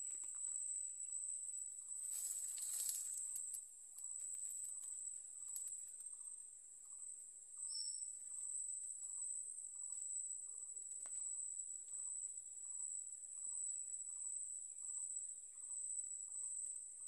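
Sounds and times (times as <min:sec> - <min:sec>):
insects trilling: 0:00.0 - 0:17.0.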